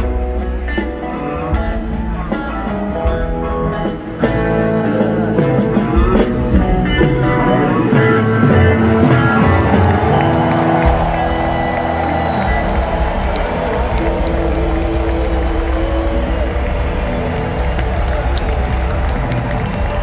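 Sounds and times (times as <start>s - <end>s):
live rock band playing: 0.0s - 20.0s
crowd cheering and applauding: 8.5s - 20.0s.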